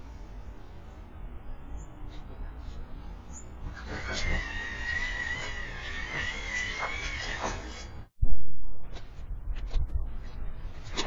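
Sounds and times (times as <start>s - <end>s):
feeder motor whirring: 3.6s - 8.1s.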